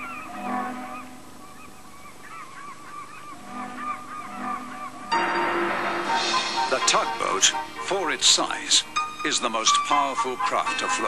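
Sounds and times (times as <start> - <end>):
flock of birds calling: 0.0 - 5.4, 6.1 - 11.0
low steady tone: 5.1 - 9.2.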